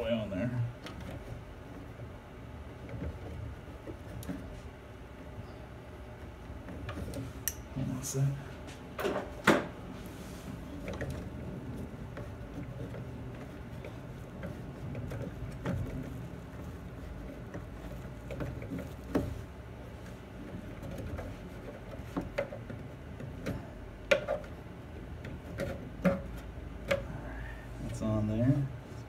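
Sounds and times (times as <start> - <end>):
hands rubbing plastic hose: 10.0 - 27.0
plastic clicks and knocks: 20.7 - 24.6.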